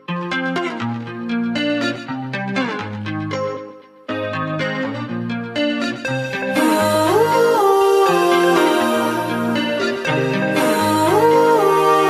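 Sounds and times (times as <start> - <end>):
background music with sliding melody: 0.0 - 12.0.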